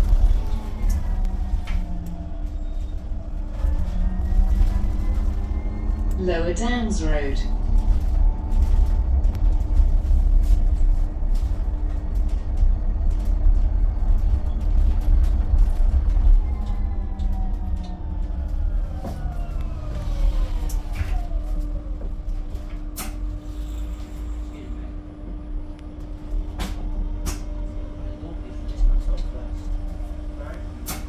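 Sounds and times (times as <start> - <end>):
bus road rumble and hum: 0.0 - 31.0.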